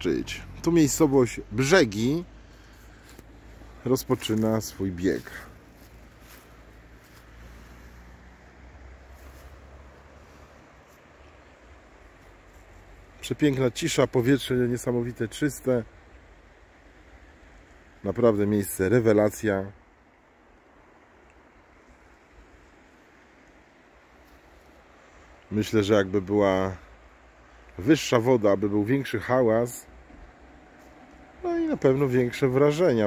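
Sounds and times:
shallow river running over stones: 0.0 - 33.0.

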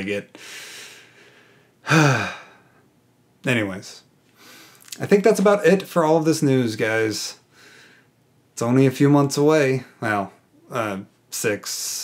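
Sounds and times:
man sighing: 1.8 - 2.8.

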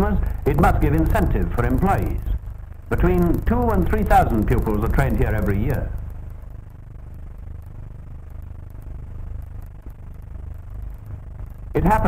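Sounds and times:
faint clicks: 0.0 - 12.0.

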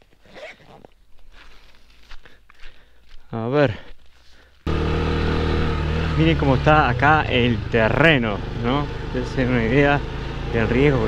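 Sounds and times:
hands rustling and scraping gear: 0.0 - 4.7.

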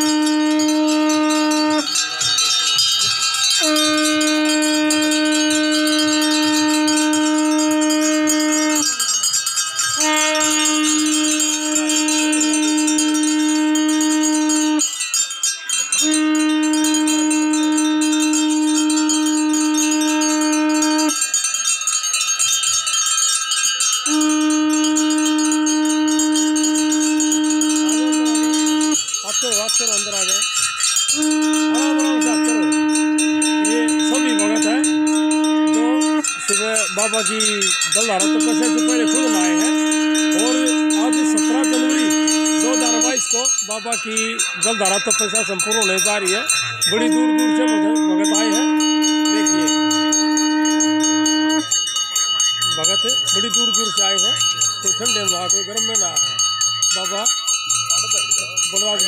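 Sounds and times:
conch shell blasts: 0.0 - 22.0, 23.2 - 59.0
brass bells ringing: 0.0 - 59.0.

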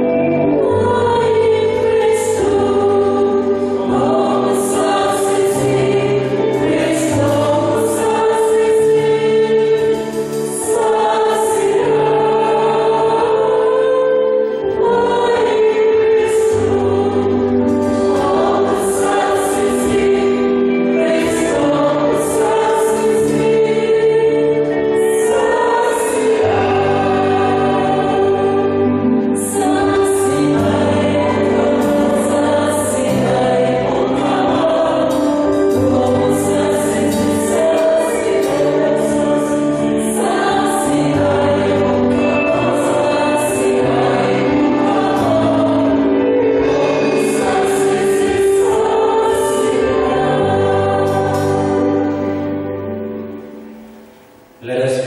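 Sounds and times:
choir singing a hymn: 0.0 - 55.0
instrumental accompaniment: 0.0 - 55.0.

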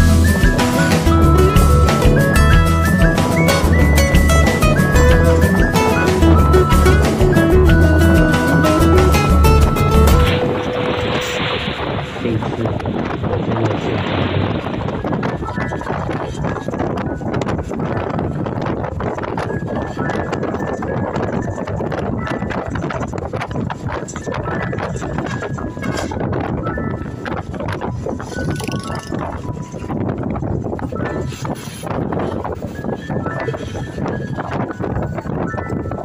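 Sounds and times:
music: 0.0 - 12.4, 15.3 - 36.0
wind from moving vehicle: 2.2 - 36.0.

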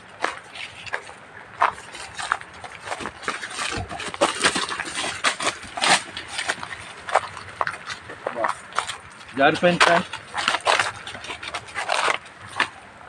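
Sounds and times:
footsteps crunching through dry leaves: 0.0 - 13.0.

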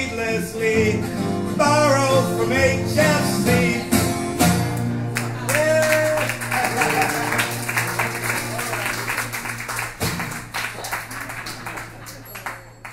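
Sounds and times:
acoustic guitar strumming: 0.0 - 10.6.

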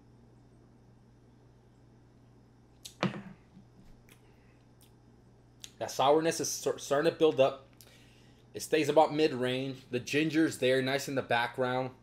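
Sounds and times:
low steady hum: 0.0 - 12.0
glass set down on tiled table: 2.9 - 3.4.

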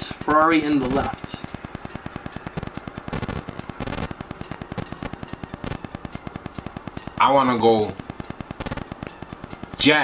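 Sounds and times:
microphone static crackling: 0.0 - 10.0.

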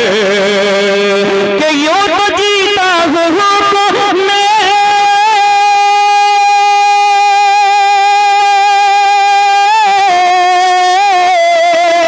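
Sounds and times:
man singing into a microphone: 0.0 - 12.0.

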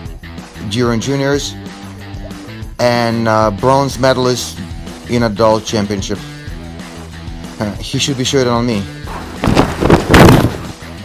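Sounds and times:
quiet background music: 0.0 - 11.0
loud rushing thudding noise: 9.1 - 10.8.

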